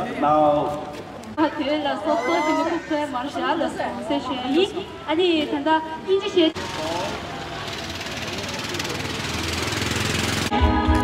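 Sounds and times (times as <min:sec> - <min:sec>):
small engine puttering: 0:06.6 - 0:10.5.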